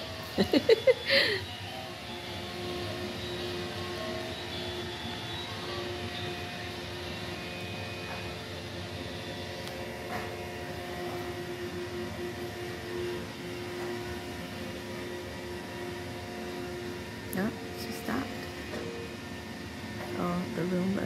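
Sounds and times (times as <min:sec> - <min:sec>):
robot vacuum motor hum: 0:00.0 - 0:21.0.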